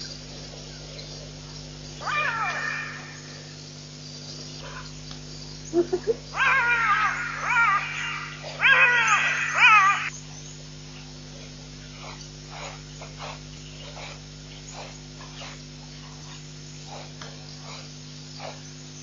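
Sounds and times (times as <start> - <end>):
high-pitched whining animal calls: 2.0 - 3.6, 5.7 - 10.1.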